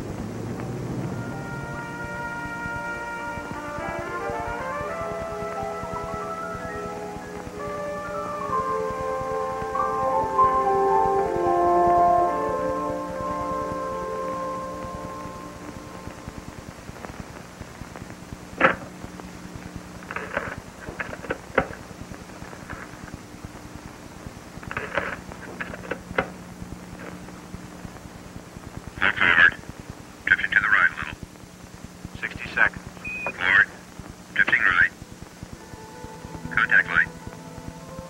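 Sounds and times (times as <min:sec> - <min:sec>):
steady low hum: 0:00.0 - 0:38.0
garbled radio voice chatter: 0:29.0 - 0:31.2, 0:32.2 - 0:35.0, 0:36.4 - 0:37.2.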